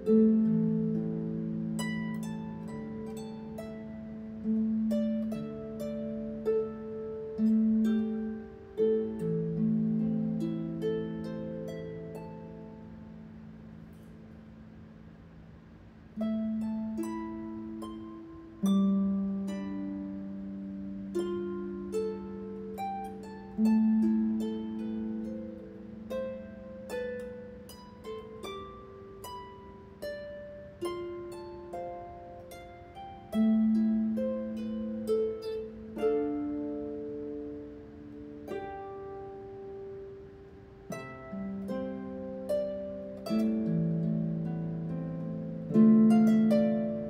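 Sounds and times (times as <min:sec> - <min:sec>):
harp playing plucked notes: 0:00.0 - 0:47.0.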